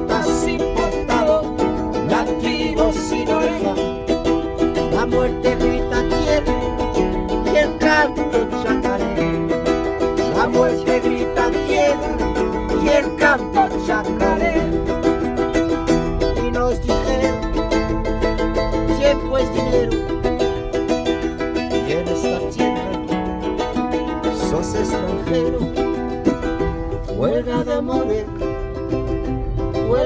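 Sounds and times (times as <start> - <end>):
acoustic string instrument strummed: 0.0 - 30.0.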